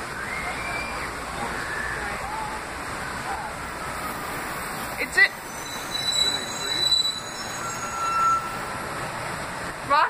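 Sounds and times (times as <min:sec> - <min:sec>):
metal-on-metal squealing: 0:05.4 - 0:08.7.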